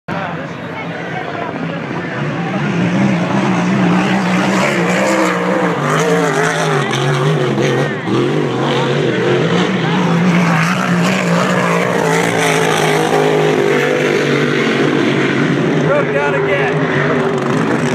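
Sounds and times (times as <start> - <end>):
powerboat engines droning: 0.1 - 17.9.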